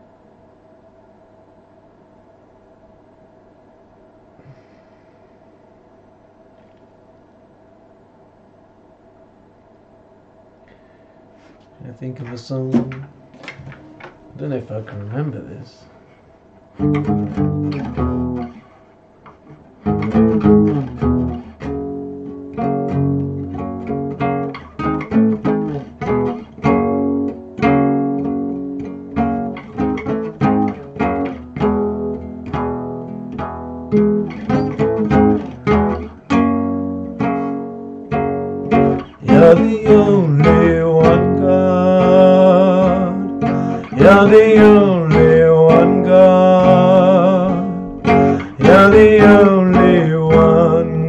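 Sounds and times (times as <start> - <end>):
classical guitar picked melody: 16.8 - 51.0
man singing: 39.2 - 51.0.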